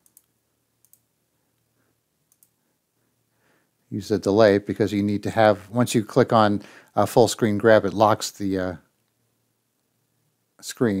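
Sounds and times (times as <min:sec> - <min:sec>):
computer mouse clicks: 0:00.0 - 0:01.1, 0:02.3 - 0:02.6.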